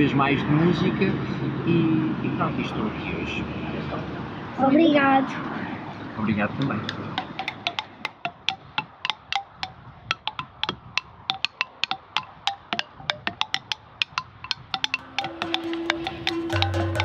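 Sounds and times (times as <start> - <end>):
wooden bars struck with sticks: 6.6 - 17.0.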